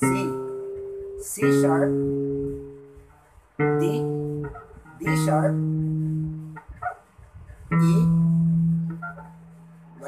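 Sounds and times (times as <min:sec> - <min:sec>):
bass guitar notes plucked: 0:00.0 - 0:07.0, 0:07.6 - 0:10.0.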